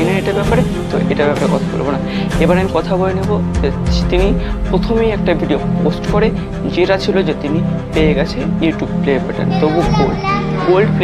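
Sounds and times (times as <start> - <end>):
background music: 0.0 - 11.0
children talking and calling out: 9.4 - 11.0.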